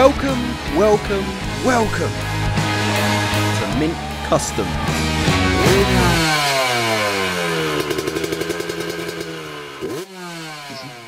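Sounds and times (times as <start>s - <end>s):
motorcycle engine revving down: 0.0s - 11.0s.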